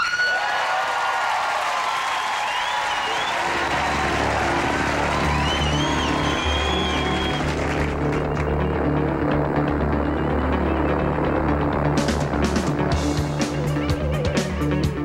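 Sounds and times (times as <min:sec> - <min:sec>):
audience applauding: 0:00.0 - 0:08.7
electric bass low notes: 0:03.7 - 0:15.0
live rock band: 0:09.7 - 0:15.0.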